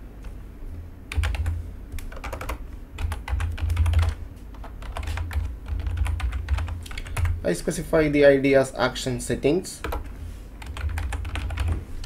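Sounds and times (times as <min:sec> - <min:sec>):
computer keyboard typing: 0:01.1 - 0:07.4, 0:09.8 - 0:11.8.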